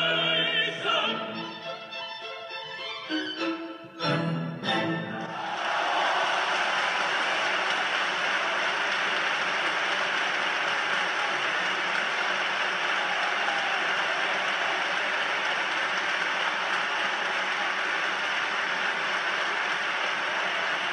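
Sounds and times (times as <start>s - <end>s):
orchestral music: 0.0s - 5.8s
audience applauding: 5.2s - 20.9s.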